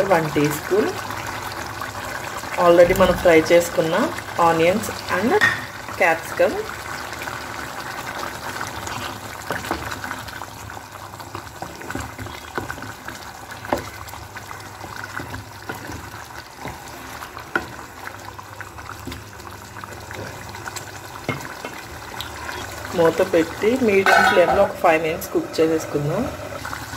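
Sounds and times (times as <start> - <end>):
gravy bubbling and popping: 0.8 - 26.9
ladle knocking against pan: 24.0 - 24.6.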